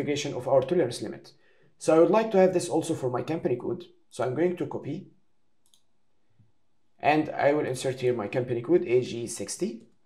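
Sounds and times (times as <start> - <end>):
computer mouse click: 5.6 - 6.0.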